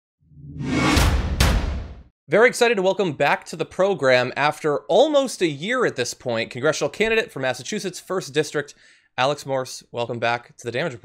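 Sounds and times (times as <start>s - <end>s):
whoosh with deep rumble: 0.4s - 1.9s
sharp hit: 0.4s - 2.1s.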